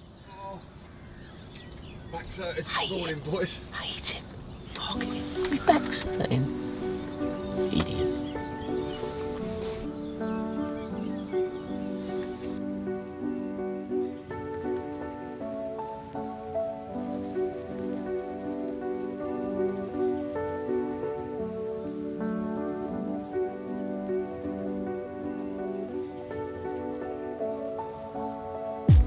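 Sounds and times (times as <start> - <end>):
soft sustained chords: 3.7 - 29.0.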